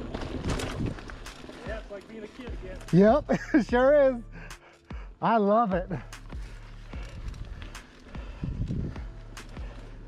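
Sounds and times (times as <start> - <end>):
bike rattling on dirt trail: 0.0 - 3.7, 5.9 - 10.0
music: 1.0 - 10.0.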